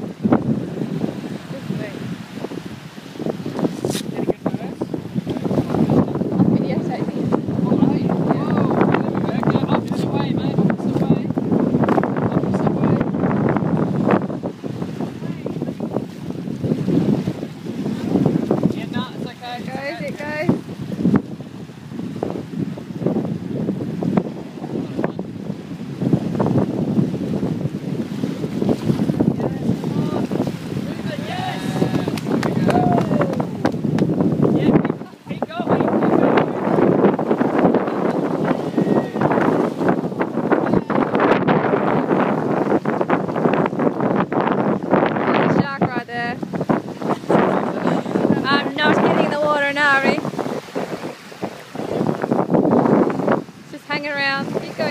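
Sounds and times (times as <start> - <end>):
small waves washing on sand: 0.0 - 54.9
wind buffeting microphone: 0.0 - 54.9
low voices: 29.4 - 33.8, 47.4 - 50.3.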